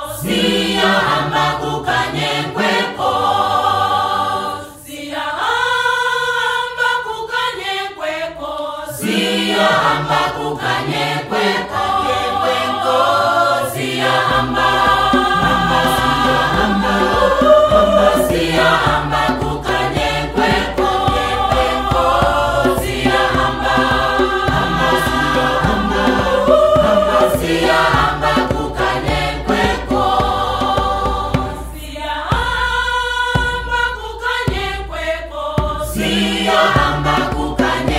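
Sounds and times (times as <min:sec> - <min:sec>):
choir singing: 0:00.0 - 0:37.9
instrumental accompaniment: 0:09.0 - 0:35.0, 0:35.6 - 0:37.9.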